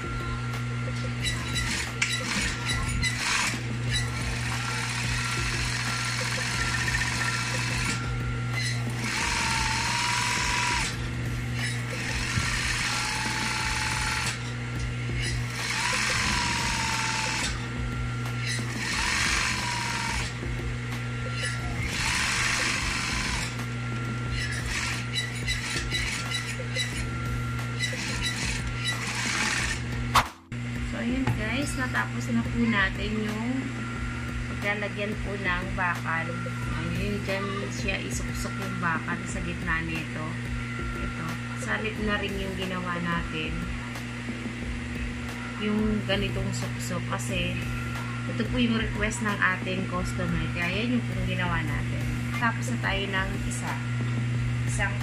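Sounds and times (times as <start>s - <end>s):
motor hum: 0.0s - 55.0s
sewing machine stitching: 1.3s - 8.0s, 8.6s - 11.0s, 15.2s - 17.6s, 18.5s - 20.4s, 21.5s - 23.6s, 27.8s - 29.8s.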